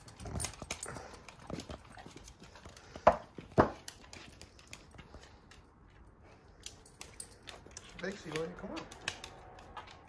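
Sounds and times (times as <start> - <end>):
dog claws clicking on wood floor: 0.0 - 10.0.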